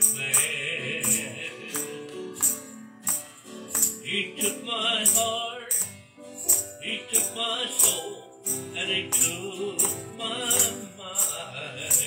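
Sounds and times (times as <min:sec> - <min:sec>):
acoustic guitar strumming: 0:00.0 - 0:12.0
tambourine struck: 0:00.0 - 0:12.0.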